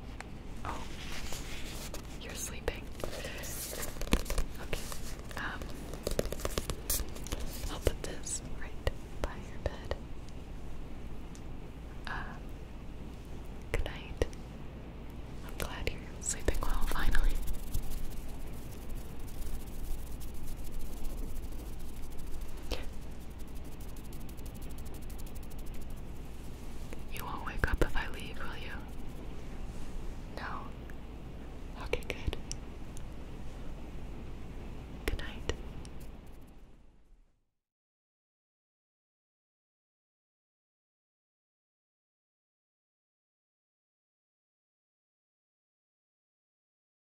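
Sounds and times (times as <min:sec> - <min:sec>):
soft whispering: 0:00.6 - 0:10.0, 0:12.0 - 0:12.5, 0:13.7 - 0:14.4, 0:15.4 - 0:29.1, 0:29.7 - 0:30.8, 0:31.7 - 0:32.5, 0:35.0 - 0:35.6.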